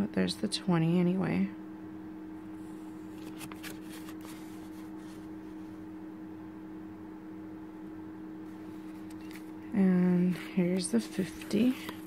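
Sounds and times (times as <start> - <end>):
steady low hum: 0.0 - 12.0
plastic banknote crinkling: 3.1 - 5.0, 10.4 - 12.0.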